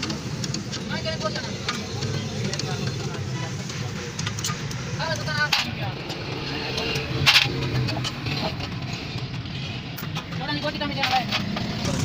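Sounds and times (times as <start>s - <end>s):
hand tools clicking and knocking: 0.0s - 12.0s.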